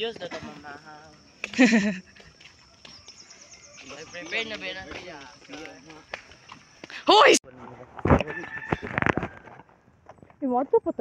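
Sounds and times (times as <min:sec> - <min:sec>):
person exclaiming loudly: 0:07.0 - 0:07.4.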